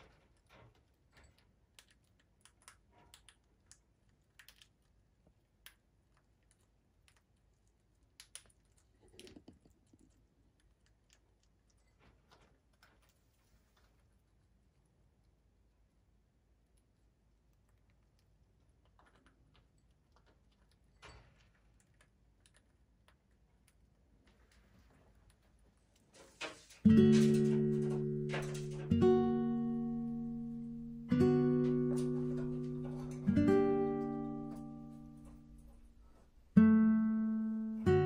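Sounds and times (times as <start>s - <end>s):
soft rustle: 11.7s - 14.4s.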